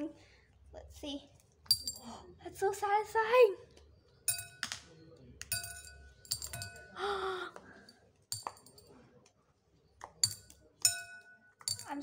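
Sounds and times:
ice balls clinking in a ceramic bowl: 0:05.4 - 0:07.0, 0:08.3 - 0:08.9, 0:10.0 - 0:12.0.

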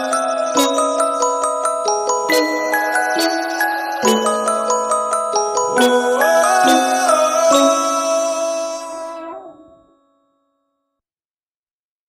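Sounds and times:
electronic trap song chords: 0:05.6 - 0:09.1.

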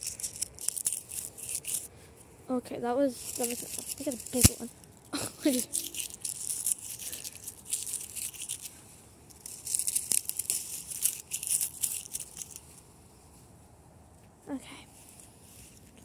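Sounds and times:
dry leaves crunching: 0:00.0 - 0:01.9, 0:03.2 - 0:12.8.

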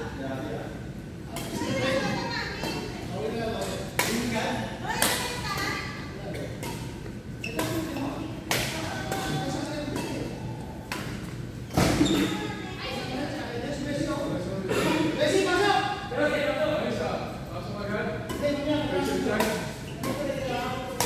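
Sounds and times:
rackets smacking shuttlecock: 0:06.6 - 0:11.4.

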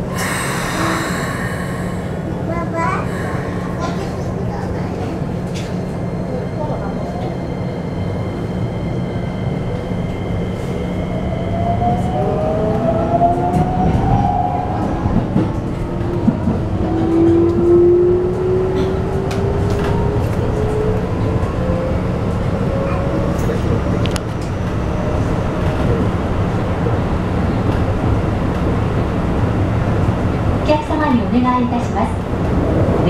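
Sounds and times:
train rumbling: 0:00.0 - 0:33.0.

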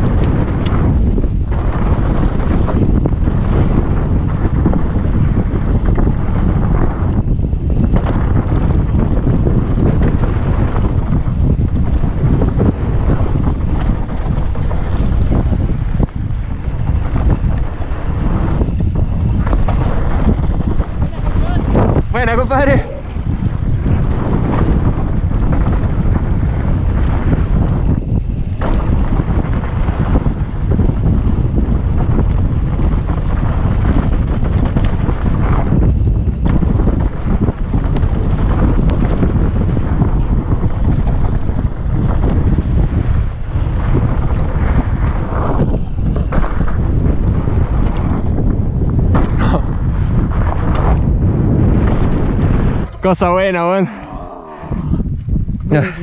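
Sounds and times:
bike tyres rumbling on dirt: 0:00.0 - 0:56.0
wind buffeting microphone: 0:00.0 - 0:56.0.

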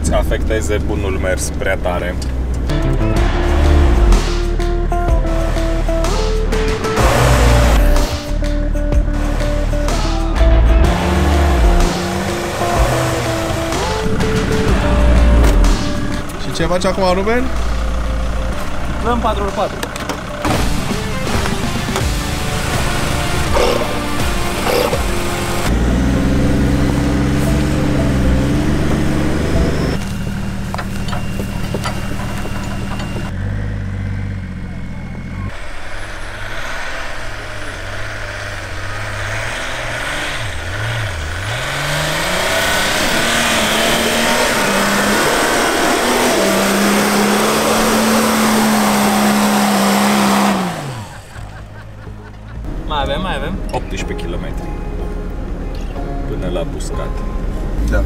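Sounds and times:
truck engines revving: 0:00.0 - 0:58.0
tyres in snow: 0:20.2 - 0:52.6.

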